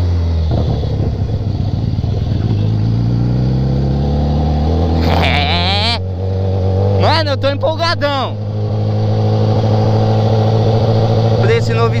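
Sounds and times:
motorcycle engine running: 0.0s - 12.0s
wind noise on microphone: 0.5s - 2.8s.

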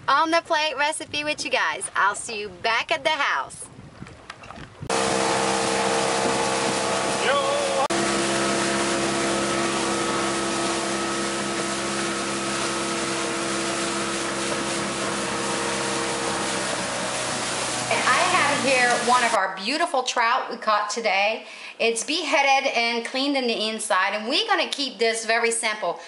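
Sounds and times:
wind and water rushing: 3.6s - 19.4s
boat engine running: 4.2s - 19.4s.

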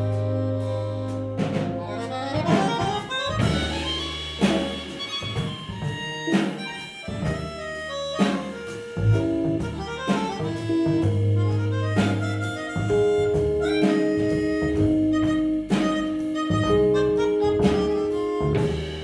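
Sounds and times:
electric bass: 0.0s - 19.0s
electric piano: 0.0s - 19.0s
melodica lead notes: 0.0s - 19.0s
drum strikes: 1.4s - 19.0s.

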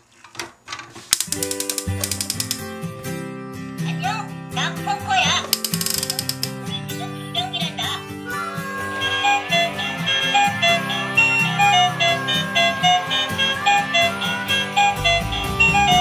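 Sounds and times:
toy ratcheting clicks: 1.2s - 2.8s, 5.5s - 6.7s
music: 1.3s - 16.0s.

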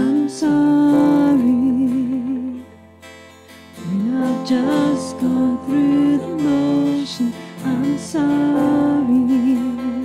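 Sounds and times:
person singing: 0.0s - 2.7s, 3.8s - 10.0s
acoustic guitar: 0.0s - 10.0s
worship band music: 3.8s - 10.0s.

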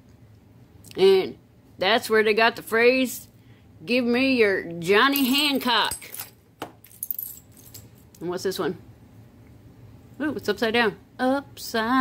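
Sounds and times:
metal medals clinking: 5.1s - 8.2s.

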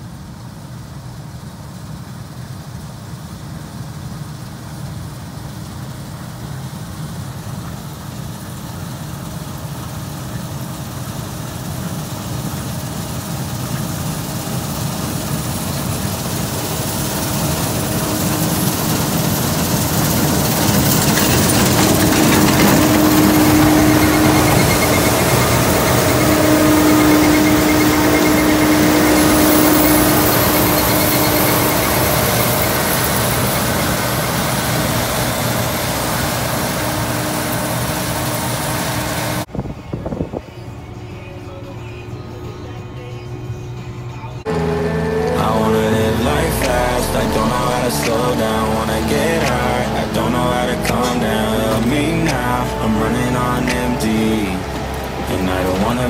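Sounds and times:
combine harvester running: 0.0s - 56.0s
machinery whine: 3.2s - 56.0s.

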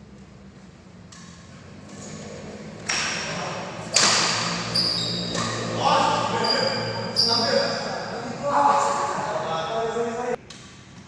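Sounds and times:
shoes squeaking on hall floor: 0.0s - 9.3s
voices in echoing hall: 2.2s - 10.5s.

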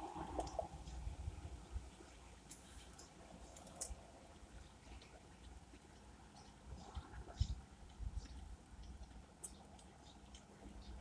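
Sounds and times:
wet chewing with crunches: 2.4s - 11.0s.

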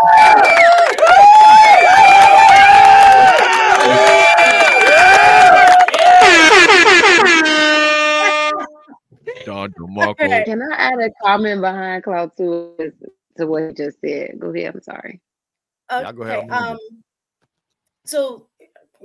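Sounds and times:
air horn blasts: 6.0s - 8.9s.

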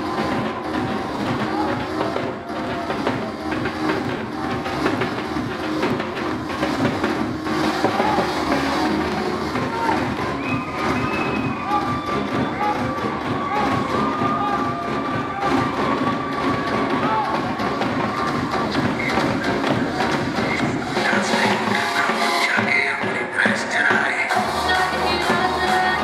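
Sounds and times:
crowd cheering and clapping: 0.0s - 26.0s
dance music: 0.0s - 26.0s.

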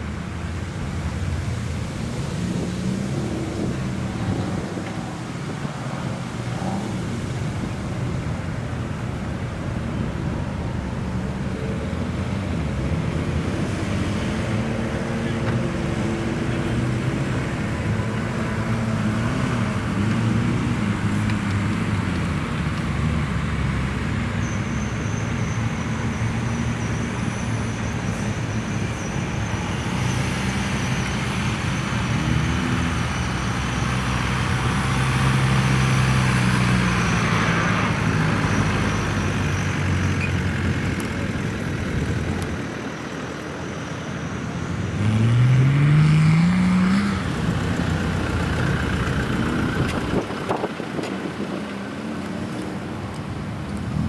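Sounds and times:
off-road engines at low speed: 0.0s - 54.0s.

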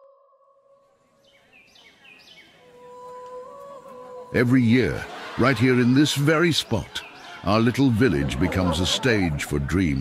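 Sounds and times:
bird chirps: 1.2s - 2.7s, 5.9s - 7.8s.

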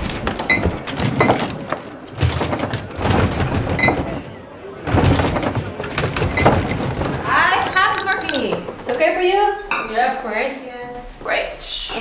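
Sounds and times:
glassware and crockery clinking: 6.2s - 8.7s.

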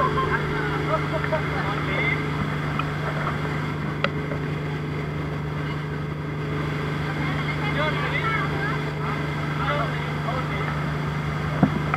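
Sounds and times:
rushing water and wind: 0.0s - 11.9s
speedboat engine drone: 0.0s - 11.9s.

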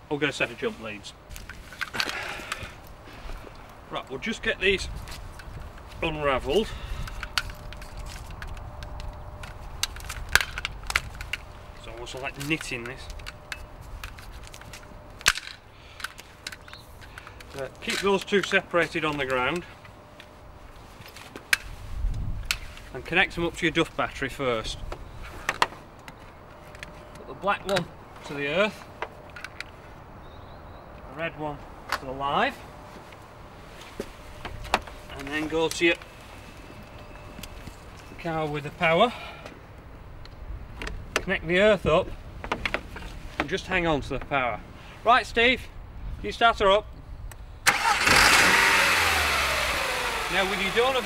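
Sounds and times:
low outdoor background: 0.0s - 51.0s
metal clamps clicking on tarmac: 7.0s - 20.3s.

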